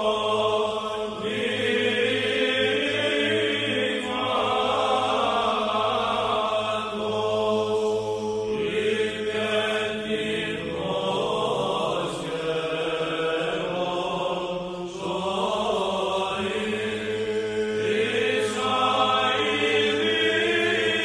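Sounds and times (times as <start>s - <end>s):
melodic chanting voice: 0.0s - 21.0s.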